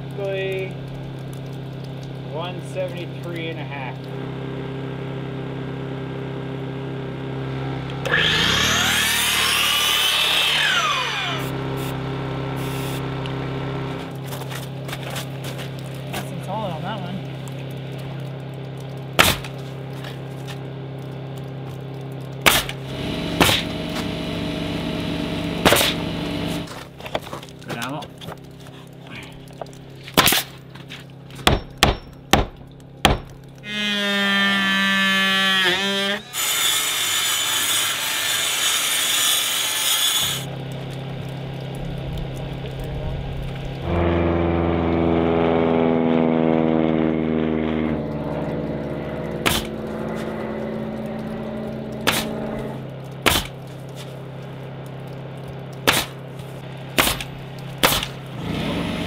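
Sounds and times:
pitched hum: 3.0s - 36.7s, 40.4s - 59.0s
circular saw cutting board: 8.0s - 12.0s, 33.6s - 40.5s
pneumatic nail gun firing: 22.4s - 24.1s, 25.6s - 26.7s, 49.4s - 49.7s, 52.0s - 52.3s, 53.3s - 53.6s, 55.9s - 56.2s, 57.0s - 58.2s.

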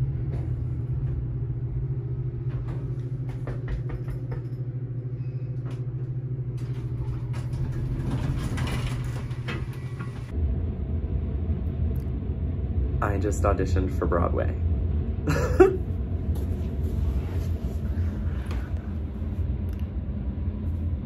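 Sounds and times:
elevator hum and rumble: 0.0s - 21.0s
clicks and rattles: 6.6s - 10.3s.

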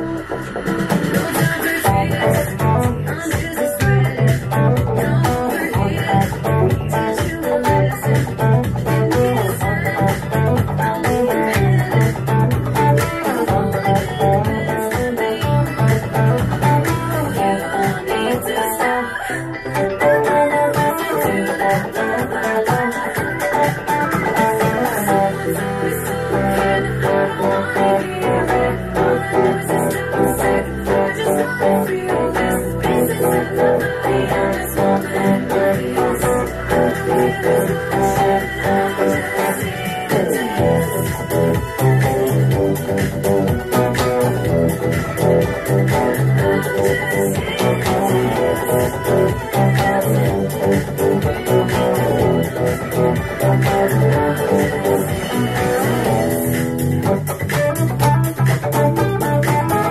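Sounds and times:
overdriven electric guitar: 0.0s - 59.9s
pop-rock backing music: 0.0s - 59.9s.

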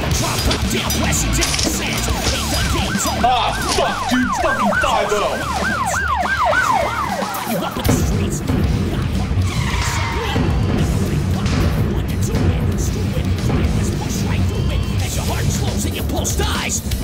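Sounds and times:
music with low beat: 0.0s - 9.4s, 10.4s - 17.0s
siren yelping: 1.5s - 7.9s.

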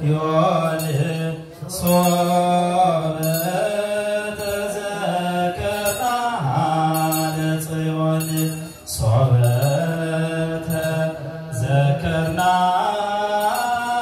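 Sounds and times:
men chanting in unison: 0.0s - 14.0s.

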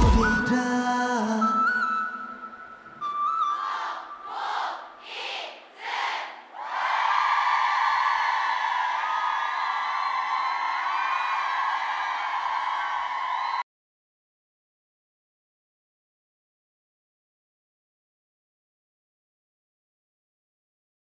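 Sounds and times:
crowd screaming and cheering: 6.5s - 13.6s.

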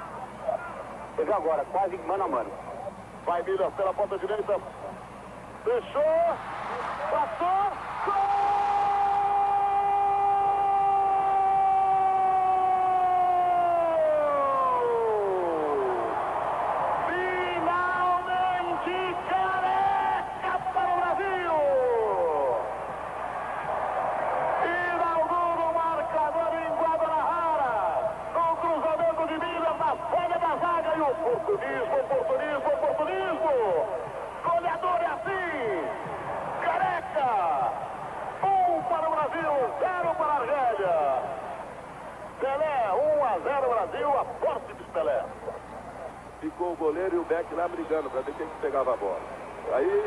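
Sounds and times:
man commentating: 17.0s - 22.7s, 24.6s - 36.0s.

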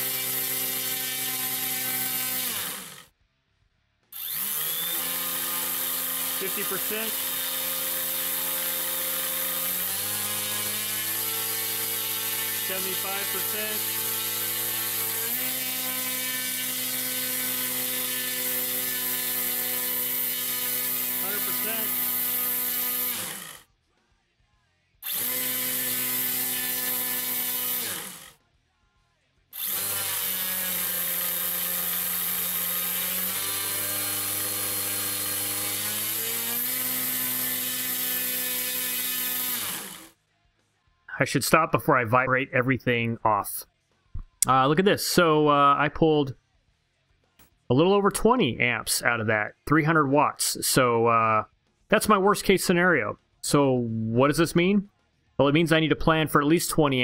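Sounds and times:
electric motor spinning propeller: 0.0s - 3.1s, 4.2s - 23.6s, 25.0s - 28.4s, 29.6s - 40.1s.

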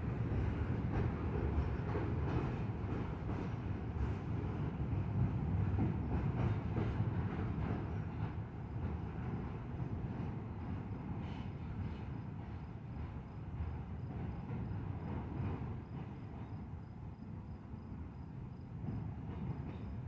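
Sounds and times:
train wheels rumbling on rail: 0.0s - 20.0s.

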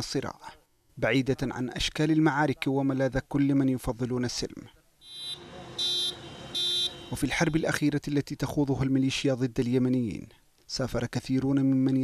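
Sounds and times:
street noise: 4.8s - 7.9s
siren beeps: 5.0s - 7.6s.

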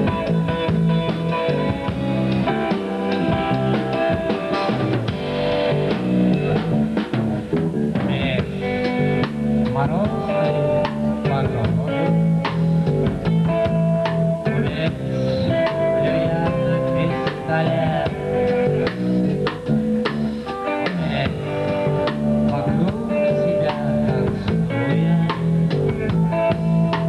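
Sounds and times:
drum kit beat: 0.0s - 27.0s
guitar chords: 0.0s - 27.0s.

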